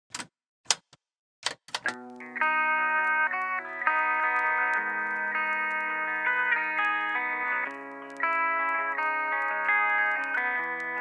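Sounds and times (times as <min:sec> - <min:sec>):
sharp clicks: 0:00.1 - 0:11.0
electric guitar chord: 0:01.9 - 0:11.0.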